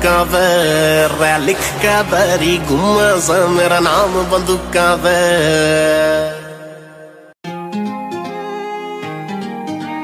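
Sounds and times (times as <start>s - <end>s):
backing music: 0.0s - 6.6s
singer holding long note: 0.0s - 7.3s.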